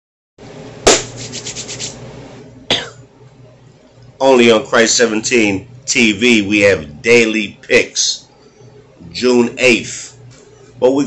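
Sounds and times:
sharp knock: 0.8 - 1.3
rubbing strokes: 0.9 - 2.0.

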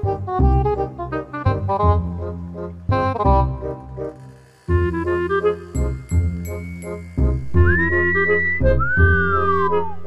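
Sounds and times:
playful background music: 0.0 - 10.0
wolf whistle: 7.5 - 10.0.

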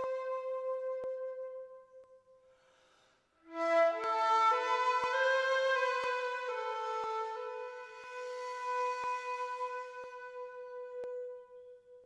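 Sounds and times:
flute-like long note: 0.0 - 2.4, 3.4 - 12.0.

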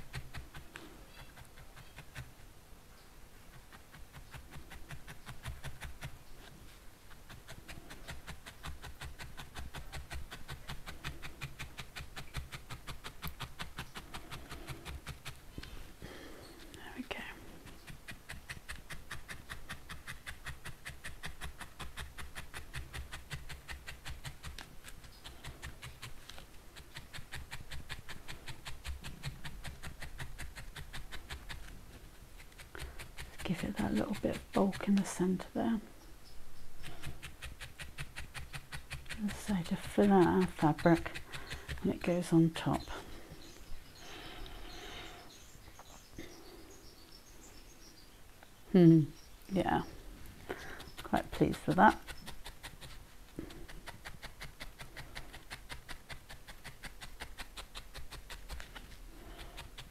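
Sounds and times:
felting needle poking wool: 0.0 - 2.6, 3.3 - 35.9, 36.8 - 44.8, 48.8 - 59.9.

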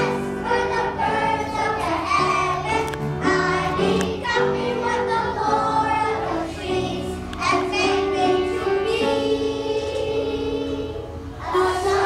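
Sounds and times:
children's choir singing: 0.0 - 12.0
piano: 0.0 - 12.0.

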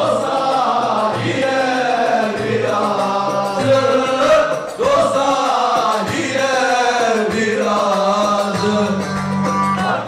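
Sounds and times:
group of men singing folk song: 0.0 - 10.0.

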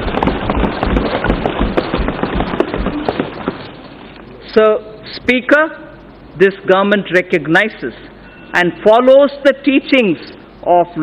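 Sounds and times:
people thumping desks: 0.0 - 3.9.

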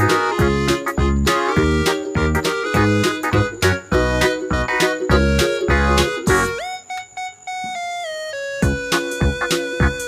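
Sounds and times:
electronic keyboard tune with beat: 0.0 - 10.0.

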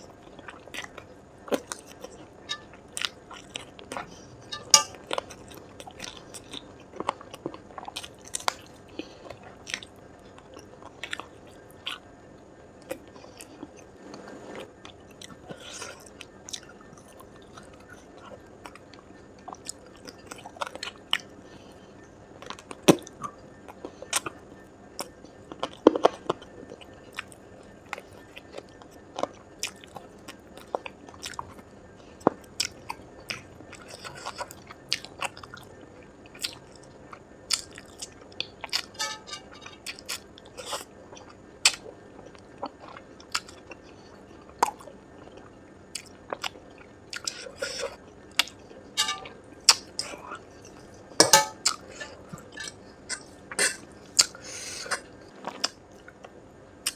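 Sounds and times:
close chewing and crunching: 0.0 - 12.1, 12.8 - 56.9.

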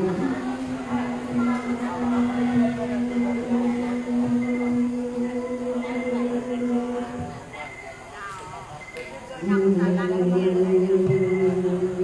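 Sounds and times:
woman singing a long note: 0.0 - 7.5, 9.4 - 12.0.

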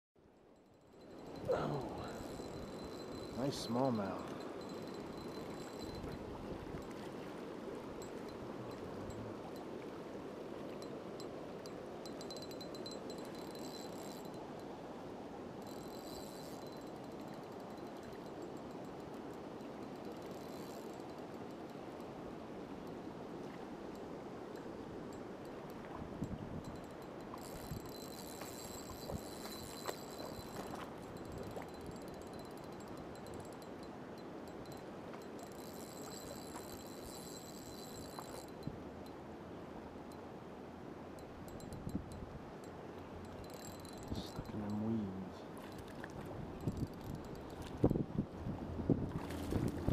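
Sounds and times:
high ringing chirr: 0.3 - 7.0, 10.8 - 14.8, 15.6 - 21.8, 26.6 - 39.2, 41.2 - 45.8
river water rushing: 1.2 - 15.7.

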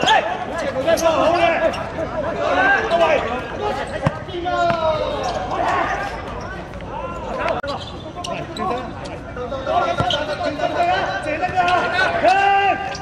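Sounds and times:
people shouting: 0.0 - 7.6, 9.7 - 13.0.

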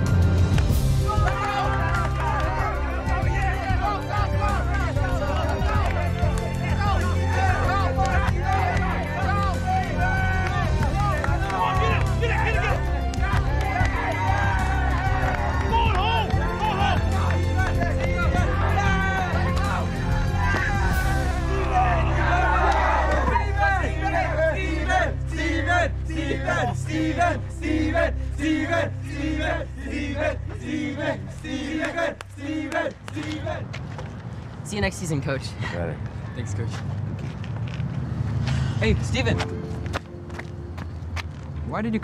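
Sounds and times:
music with low bass line: 0.0 - 32.4
boys chanting: 1.1 - 33.6
excited shouting voices: 1.1 - 33.7.

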